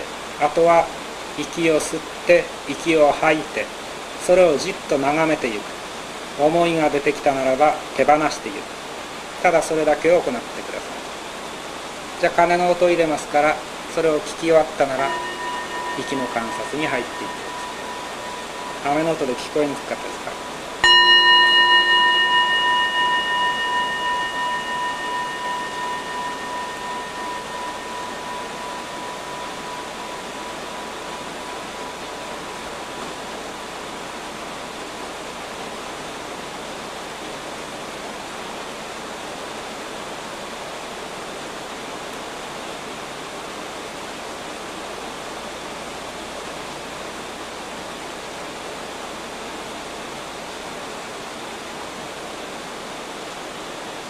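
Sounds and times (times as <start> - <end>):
bowl bell ringing: 13.0 - 34.2.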